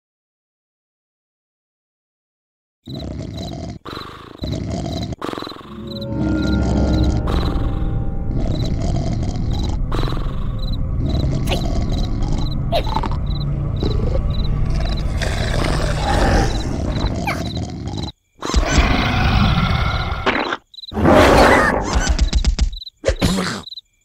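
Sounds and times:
low roar-like rumble: 0:06.4 - 0:17.0.

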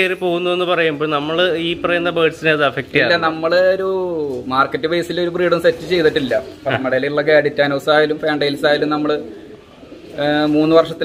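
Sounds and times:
man speaking: 0:00.0 - 0:09.4, 0:10.0 - 0:11.0
pigeons cooing: 0:00.0 - 0:11.0.

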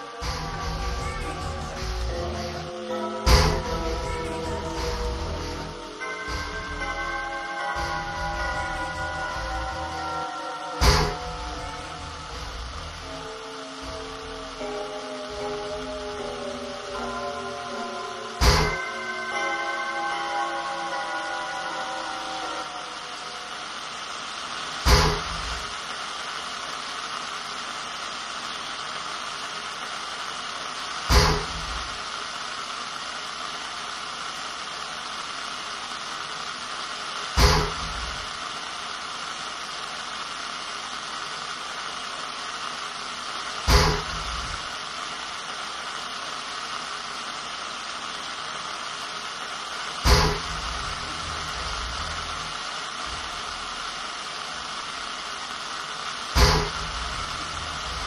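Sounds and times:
static hiss: 0:00.0 - 0:58.0.

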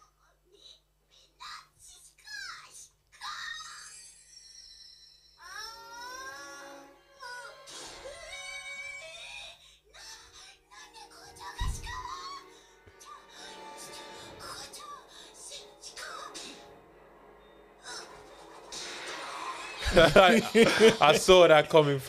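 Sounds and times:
background music: 0:05.4 - 0:22.0
low thump: 0:11.6 - 0:12.1.

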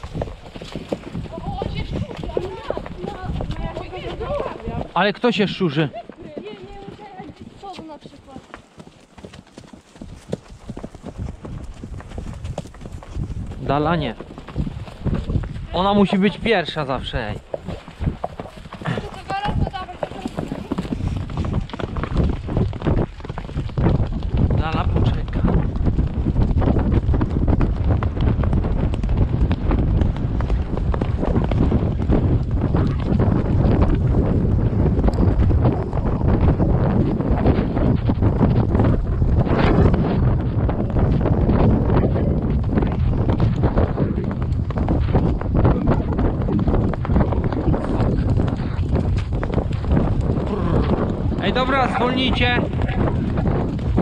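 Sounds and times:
horse hoofbeats on sand: 0:00.0 - 0:54.0
wind buffeting microphone: 0:00.0 - 0:54.0.

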